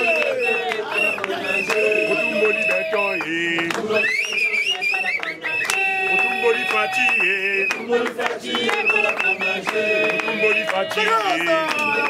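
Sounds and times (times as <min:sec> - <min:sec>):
man singing and chanting: 0:00.0 - 0:04.1, 0:06.0 - 0:07.7, 0:09.4 - 0:12.0.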